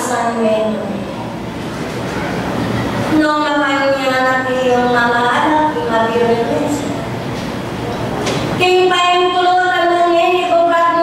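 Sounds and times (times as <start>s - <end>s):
steady noisy hiss: 0.0s - 11.0s.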